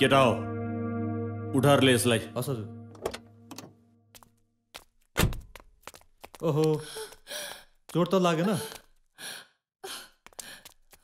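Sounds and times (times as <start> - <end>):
low sustained music note: 0.0 - 4.1.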